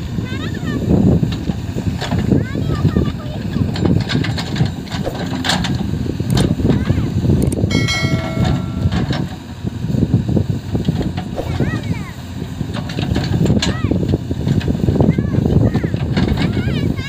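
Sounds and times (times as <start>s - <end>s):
diesel engine under load: 0.0s - 17.0s
clicks and knocks: 7.7s - 9.4s.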